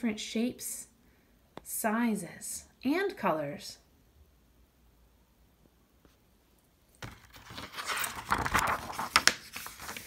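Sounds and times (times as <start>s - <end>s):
book pages turning: 7.0s - 10.0s.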